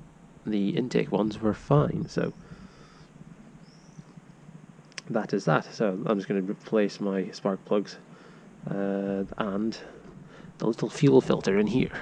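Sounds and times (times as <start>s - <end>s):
distant bird chirp: 0.0s - 5.8s.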